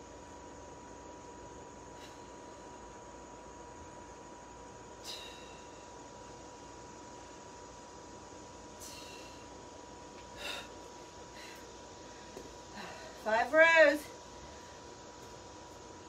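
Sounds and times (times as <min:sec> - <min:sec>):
woman breathing hard: 0:01.8 - 0:03.0, 0:05.0 - 0:06.1, 0:08.8 - 0:09.6, 0:10.2 - 0:13.3.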